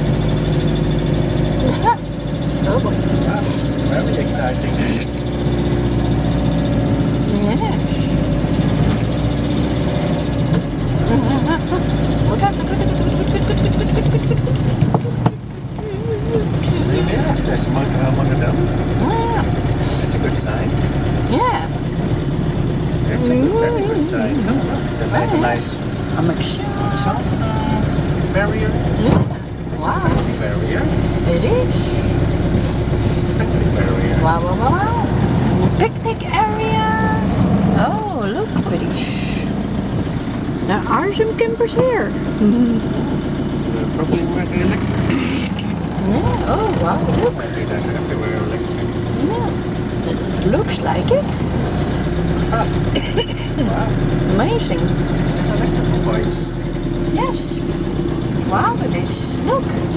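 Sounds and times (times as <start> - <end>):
engine running low hum: 0.0 - 59.9.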